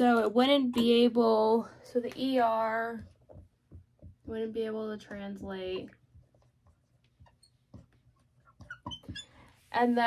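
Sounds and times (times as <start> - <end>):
marker writing on whiteboard: 2.9 - 10.0
marker squeaks: 6.3 - 9.7.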